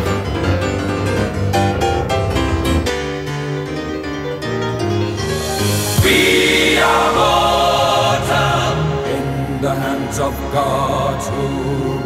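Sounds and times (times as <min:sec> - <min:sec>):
orchestral pop music with choir: 0:05.2 - 0:12.0.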